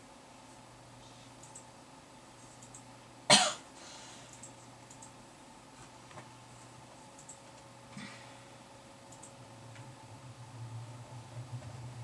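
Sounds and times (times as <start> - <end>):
faint steady hum: 0.0 - 12.0
person coughing: 3.3 - 3.7.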